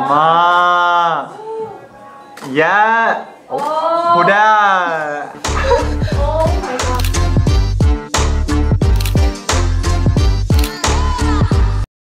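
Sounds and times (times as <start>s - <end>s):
music with heavy bass beat: 5.5s - 11.8s.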